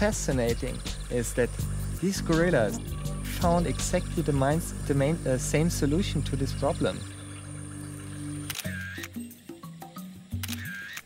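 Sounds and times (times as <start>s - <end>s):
background music with held notes: 0.0s - 11.0s
camera shutter clicks: 8.5s - 9.2s, 10.4s - 11.0s.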